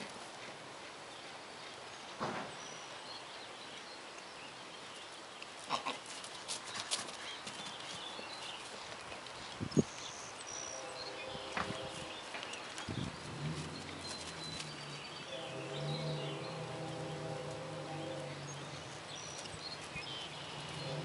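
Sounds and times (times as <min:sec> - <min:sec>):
birds chirping: 0:01.1 - 0:21.0
hooves thudding on grass: 0:06.0 - 0:10.1, 0:11.3 - 0:21.0
steady low hum: 0:13.2 - 0:19.6.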